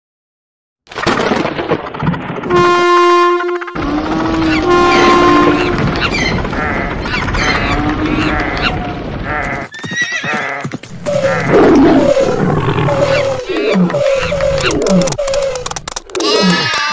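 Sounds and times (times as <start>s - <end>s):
steam locomotive whistle: 2.5s - 5.9s
rumbling noise: 3.8s - 9.7s, 10.8s - 16.7s
many animal calls: 3.8s - 16.9s.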